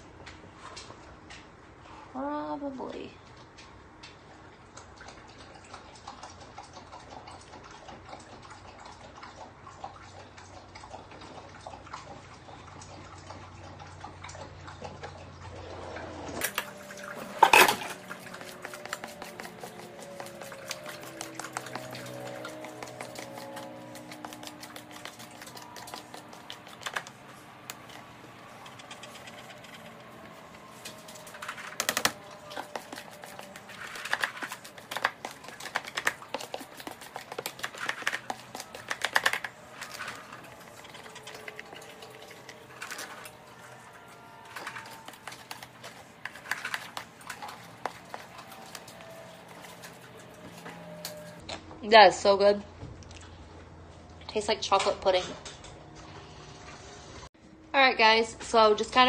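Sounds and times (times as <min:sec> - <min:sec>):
utensil scraping plastic bowl: 0:16.4 - 0:51.4.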